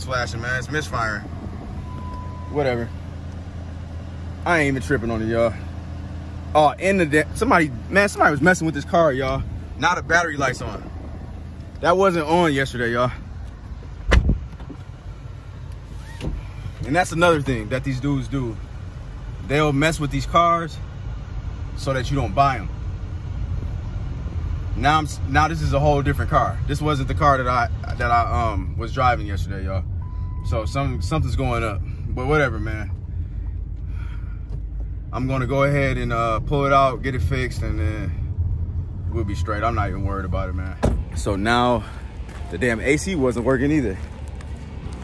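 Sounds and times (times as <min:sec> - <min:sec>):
car engine idling: 0:00.0 - 0:45.0
sharp thump: 0:14.0 - 0:14.8, 0:40.7 - 0:41.2.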